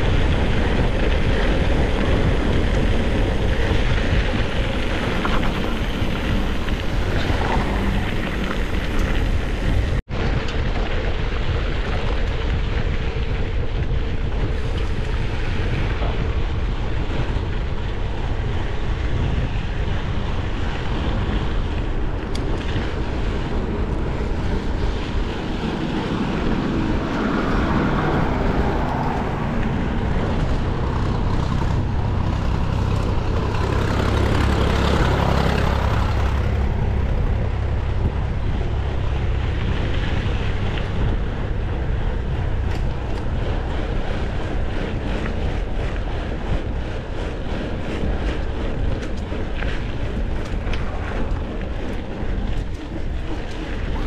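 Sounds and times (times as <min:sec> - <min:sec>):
bike tyres rolling on dirt: 0:00.0 - 0:54.0
wind rushing over microphone: 0:00.0 - 0:54.0.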